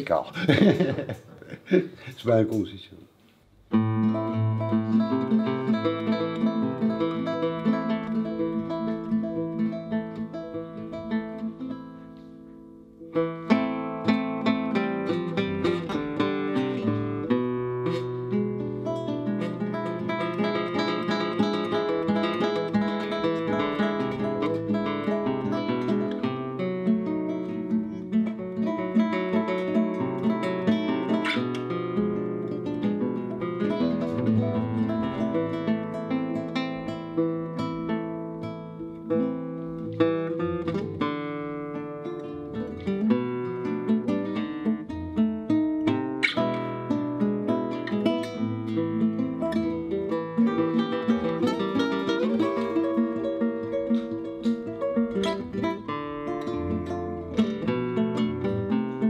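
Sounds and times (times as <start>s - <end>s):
flamenco guitar: 3.3s - 59.0s.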